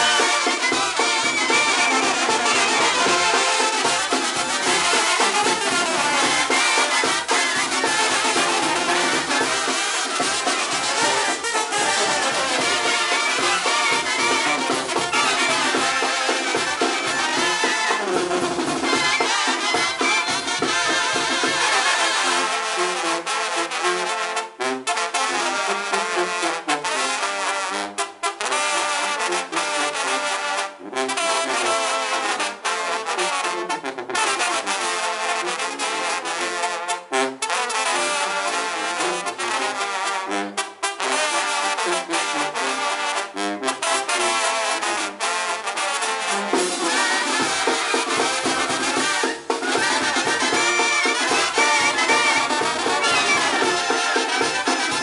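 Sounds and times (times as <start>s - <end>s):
trombones and trumpets: 0.0s - 55.0s.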